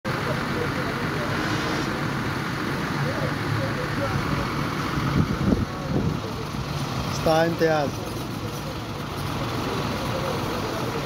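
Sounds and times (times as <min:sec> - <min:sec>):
coach road and engine noise: 0:00.0 - 0:11.0
faint voices: 0:00.1 - 0:11.0.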